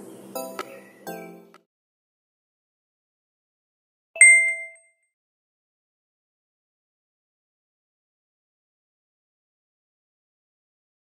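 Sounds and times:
bright ding chime: 4.2s - 4.8s.

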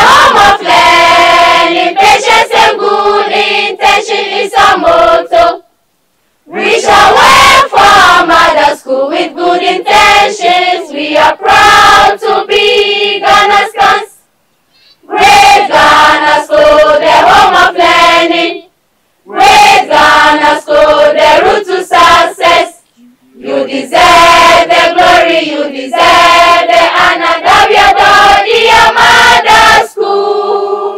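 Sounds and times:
choir singing unaccompanied: 0.0s - 5.7s, 6.4s - 14.2s, 15.0s - 30.9s.

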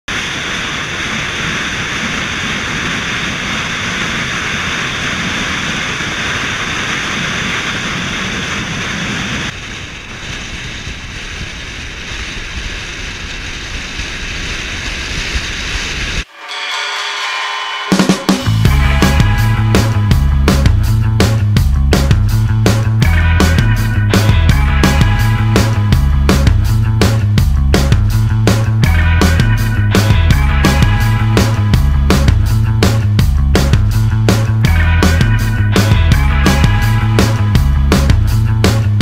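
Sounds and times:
wind and road noise: 0.1s - 16.3s, 18.4s - 39.0s
music: 16.3s - 39.0s.

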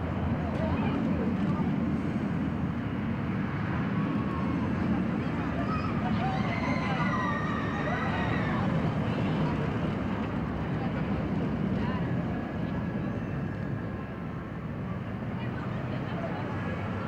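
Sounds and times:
roller coaster rumbling on track: 0.0s - 17.0s.

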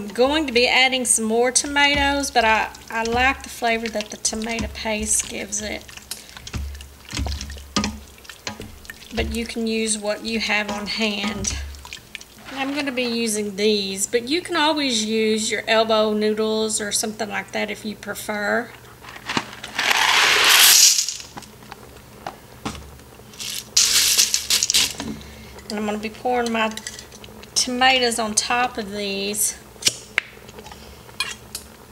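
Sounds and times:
wet stirring: 0.0s - 13.3s, 23.4s - 25.0s
spatula knocking against pot: 1.6s - 12.0s.

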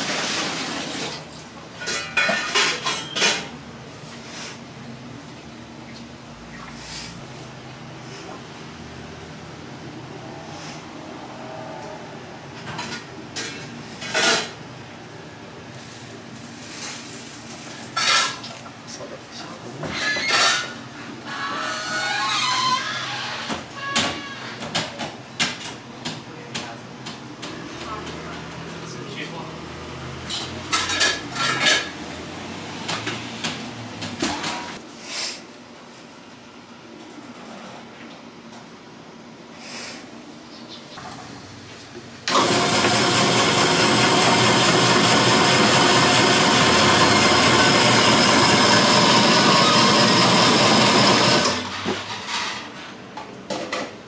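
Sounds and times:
utensils and dishes clinking: 0.0s - 3.6s, 17.8s - 18.6s, 30.2s - 32.0s.

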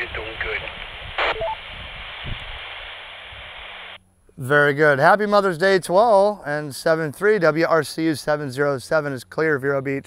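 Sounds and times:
radio static hiss: 0.0s - 4.0s.

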